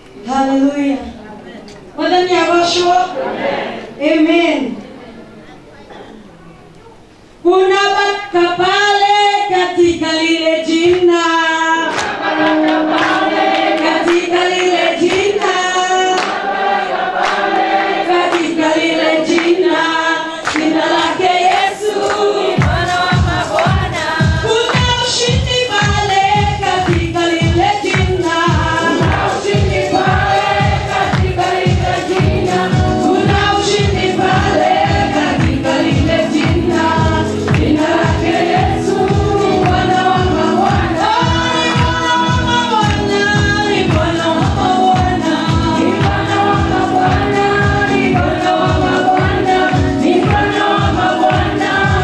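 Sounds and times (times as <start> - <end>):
congregation singing: 2.2 - 4.0, 9.0 - 52.0
instrumental backing: 11.8 - 20.0, 20.6 - 52.0
hand claps: 11.9 - 16.4, 17.2 - 17.5, 18.3 - 19.6, 20.4 - 20.8, 21.5 - 25.1, 26.8 - 27.2, 27.8 - 29.6, 31.1 - 31.4, 32.1 - 32.3, 35.3 - 36.7, 37.5 - 37.8, 43.8 - 46.3, 47.0 - 52.0
steady low beat: 22.6 - 52.0.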